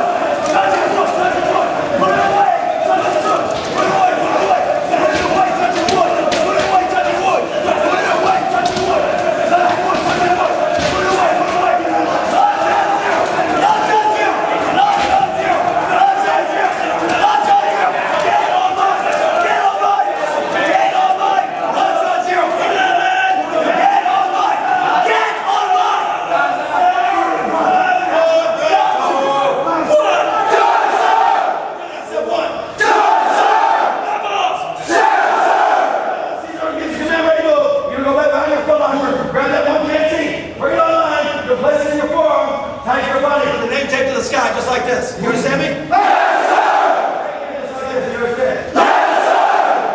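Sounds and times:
drill instructors yelling: 0.0s - 37.6s, 45.3s - 49.9s
group shouting in unison: 30.2s - 31.7s, 32.8s - 36.2s, 45.9s - 47.3s, 48.8s - 49.9s.

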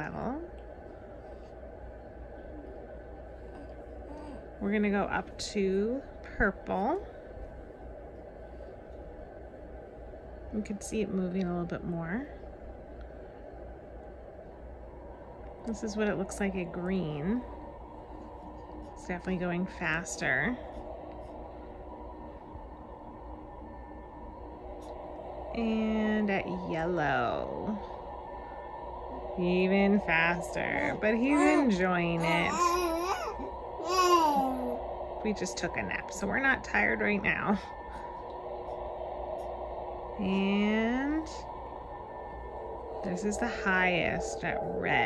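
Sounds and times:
white noise hiss: 0.0s - 45.0s
infant cooing: 3.5s - 4.5s, 30.8s - 34.8s.

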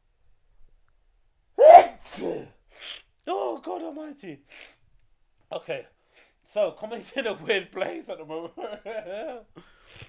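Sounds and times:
man sneezing: 1.6s - 3.1s.

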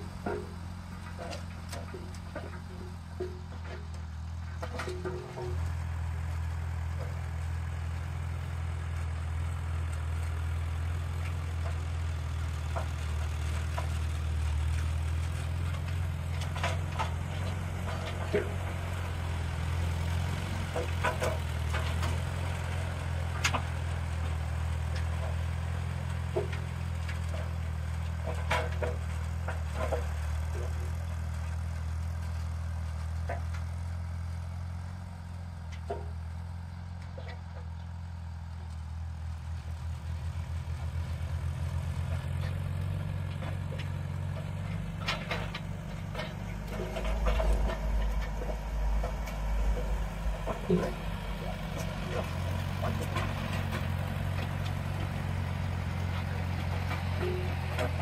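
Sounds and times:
tractor engine running: 0.0s - 58.0s.

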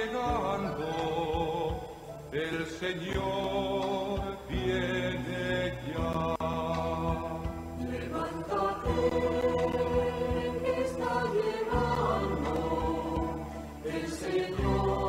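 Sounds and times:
instrumental accompaniment: 0.0s - 15.0s
choir singing a hymn: 2.8s - 15.0s.

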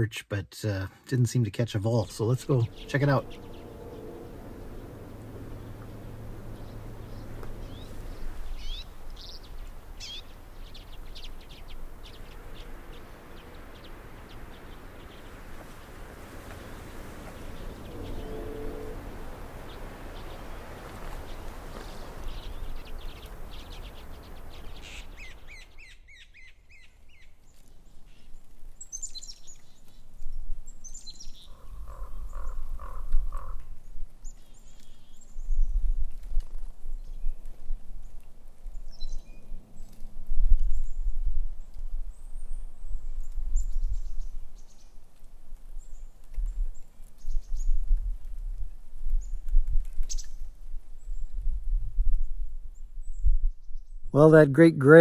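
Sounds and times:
small birds chirping: 1.7s - 45.1s, 49.1s - 51.5s
low rumble: 2.0s - 24.4s.

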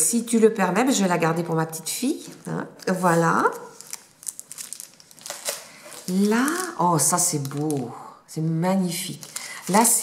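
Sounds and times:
plastic packaging crinkling: 2.2s - 8.1s, 8.8s - 10.0s.

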